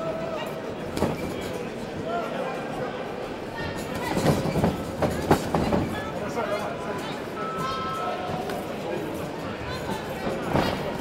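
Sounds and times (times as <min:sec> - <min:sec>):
echoing hubbub of voices: 0:00.0 - 0:11.0.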